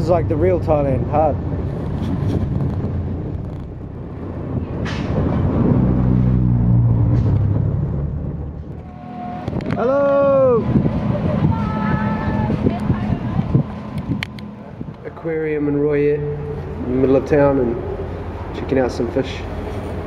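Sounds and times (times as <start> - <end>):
vehicle engine humming: 0.0 - 20.0
rising and falling pitched call: 8.8 - 15.1.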